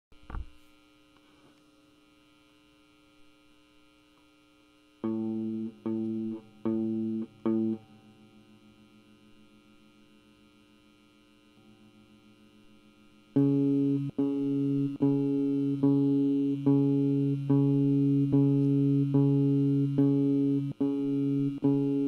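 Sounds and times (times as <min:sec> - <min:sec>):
electrical mains hum: 0:00.1 - 0:22.0
sustained amplified instrument notes: 0:05.0 - 0:22.0.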